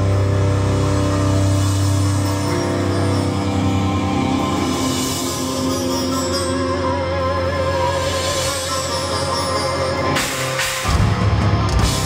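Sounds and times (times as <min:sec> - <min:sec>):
distorted bass and guitar drone: 0:00.0 - 0:12.0.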